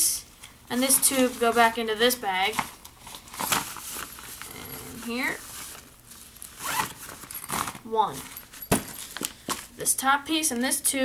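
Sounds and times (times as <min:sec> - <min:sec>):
zipper being pulled: 0:04.4 - 0:05.4, 0:06.6 - 0:07.8.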